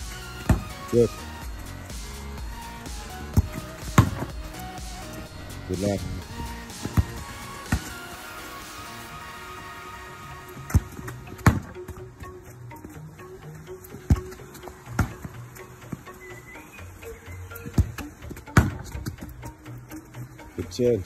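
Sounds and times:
background music: 0:00.0 - 0:21.0
boot striking football: 0:00.4 - 0:01.1, 0:03.4 - 0:04.3, 0:06.8 - 0:08.0, 0:10.6 - 0:12.0, 0:14.1 - 0:15.3, 0:17.8 - 0:19.2.

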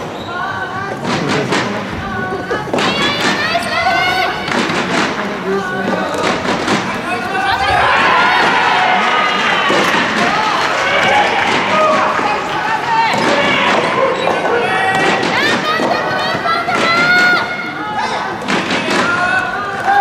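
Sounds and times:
people shouting and calling: 0:00.3 - 0:20.0
rackets hitting rubber ball: 0:04.5 - 0:07.7.

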